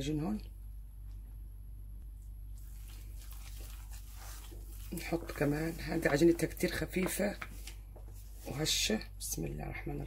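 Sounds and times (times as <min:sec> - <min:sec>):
low steady hum: 0:00.0 - 0:10.0
hand squeezing wet dough: 0:02.5 - 0:08.5.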